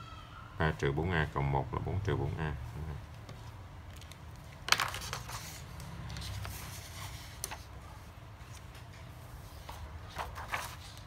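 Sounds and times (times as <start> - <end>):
paper sliding and shuffling: 4.8 - 11.0.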